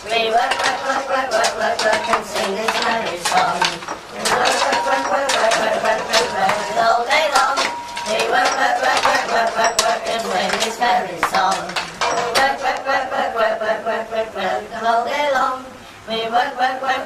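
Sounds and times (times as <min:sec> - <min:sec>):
group of voices singing: 0:00.0 - 0:17.0
sharp metallic clinks and knocks: 0:00.4 - 0:12.8.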